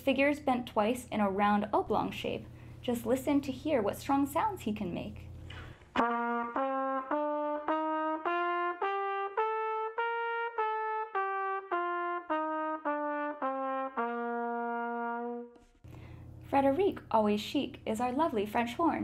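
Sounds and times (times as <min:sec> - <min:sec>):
trumpet playing a scale: 0:06.0 - 0:15.7.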